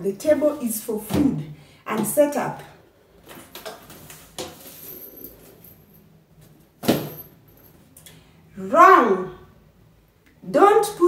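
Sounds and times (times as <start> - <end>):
chain clinking: 4.4 - 6.1, 6.8 - 7.8.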